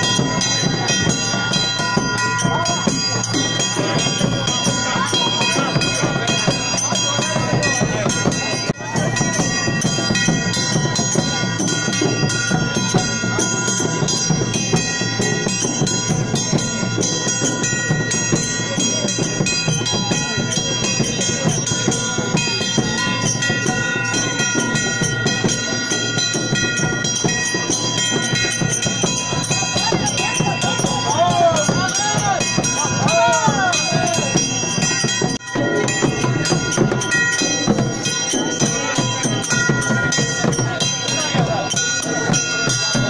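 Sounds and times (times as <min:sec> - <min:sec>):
drums beaten fast: 0:00.0 - 0:43.0.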